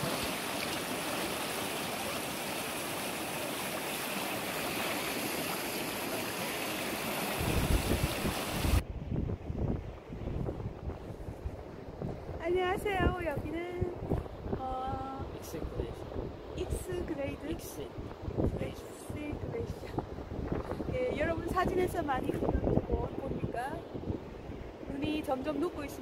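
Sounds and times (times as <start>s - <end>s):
river rushing over gravel: 0.0s - 8.8s
wind buffeting microphone: 7.2s - 26.0s.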